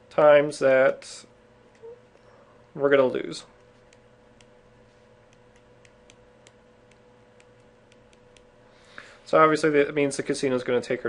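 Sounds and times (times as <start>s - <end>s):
faint steady hum: 0.0s - 11.0s
stylus tapping on a tablet: 5.3s - 8.5s.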